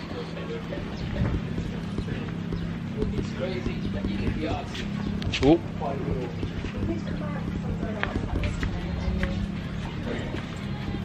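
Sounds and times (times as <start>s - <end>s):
footsteps on pavement: 0.0s - 11.0s
steady low hum: 0.0s - 11.0s.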